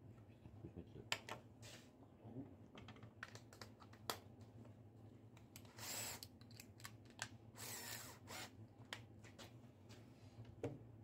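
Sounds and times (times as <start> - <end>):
drill motor spinning: 5.7 - 6.2, 7.6 - 8.5.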